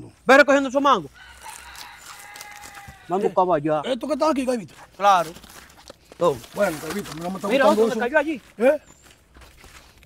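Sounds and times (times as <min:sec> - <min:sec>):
rooster crowing: 0:01.1 - 0:03.4.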